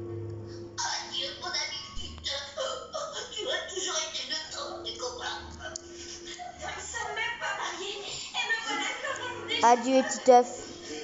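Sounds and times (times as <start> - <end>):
soft music: 0.0 - 11.0.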